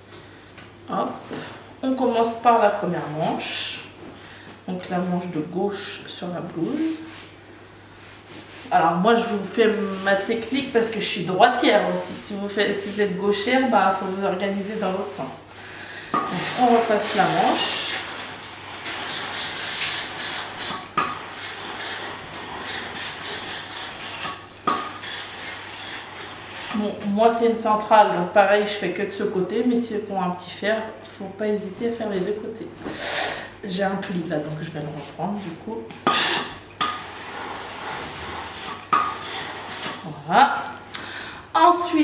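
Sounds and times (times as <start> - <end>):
steam iron hissing: 16.2 - 26.8, 36.3 - 40.0.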